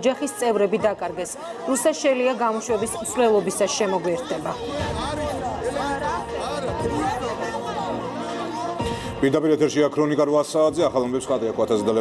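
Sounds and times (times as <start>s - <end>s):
crowd voices: 0.0s - 12.0s
faint music: 0.0s - 12.0s
man talking animatedly: 2.5s - 12.0s.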